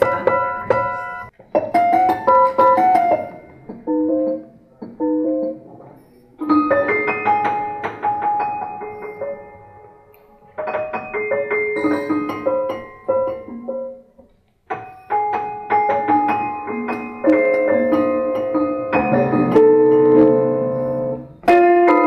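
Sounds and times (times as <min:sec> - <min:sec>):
prepared piano notes: 0:00.0 - 0:22.0.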